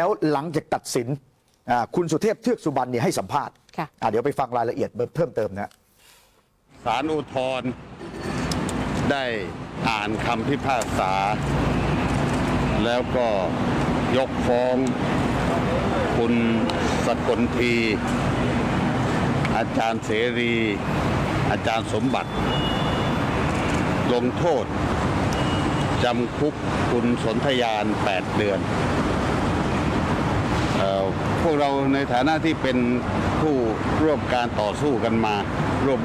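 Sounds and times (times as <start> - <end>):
man speaking: 0.0 - 5.8, 15.6 - 18.0
low traffic rumble: 6.6 - 36.0.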